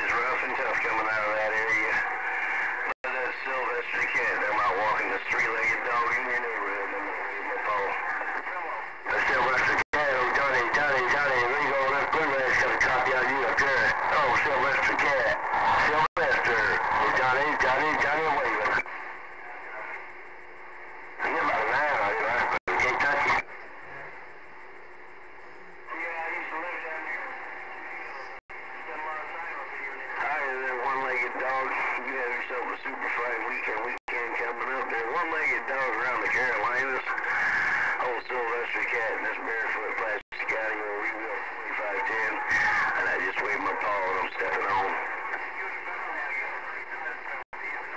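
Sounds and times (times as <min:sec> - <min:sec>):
voices over cb radio: 0:00.0 - 0:24.4, 0:25.1 - 0:47.9
radio static hiss: 0:00.0 - 0:47.9.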